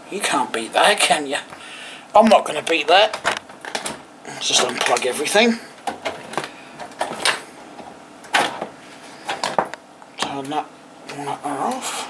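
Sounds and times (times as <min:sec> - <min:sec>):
cables unplugging clicks and knocks: 0:02.7 - 0:04.0.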